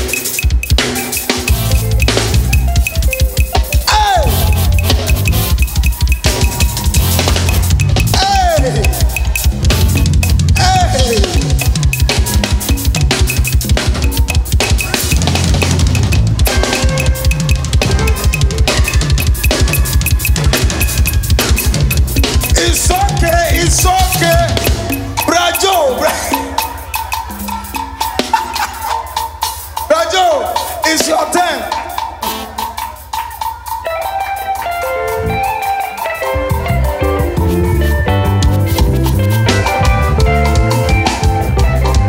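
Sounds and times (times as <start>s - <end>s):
drum kit played fast: 0.0s - 42.0s
low bass line: 1.5s - 26.6s.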